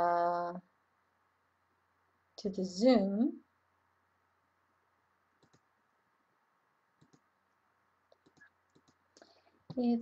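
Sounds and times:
computer mouse clicks: 5.4 - 5.7, 7.0 - 7.3, 8.1 - 9.9.

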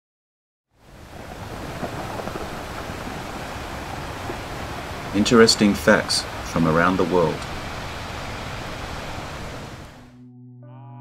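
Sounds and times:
ocean surf washing: 0.8 - 10.1.

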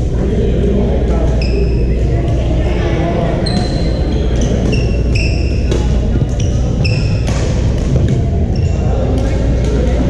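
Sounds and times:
echoing crowd voices: 0.0 - 10.0
sneaker squeaking on court floor: 3.3 - 9.4.

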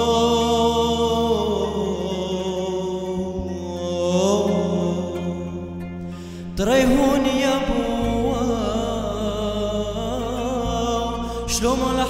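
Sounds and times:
man singing a chant: 0.0 - 12.0.

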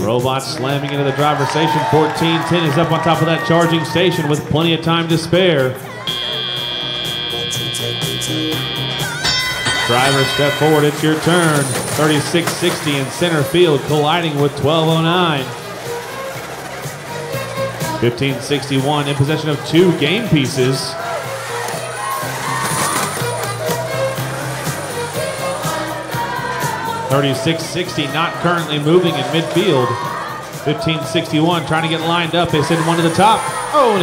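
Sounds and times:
arena music with pulsing bass: 0.0 - 34.0
long high-pitched signal tone: 6.0 - 10.6.

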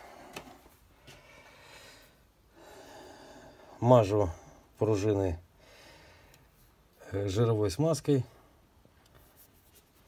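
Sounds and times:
soft breathy rustle: 9.2 - 10.0.

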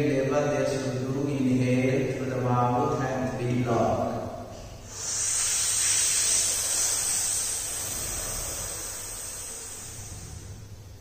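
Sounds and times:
hissing breath through pursed lips: 4.5 - 11.0.

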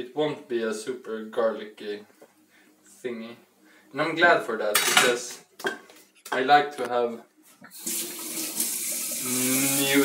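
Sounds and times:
water running: 7.6 - 10.0.

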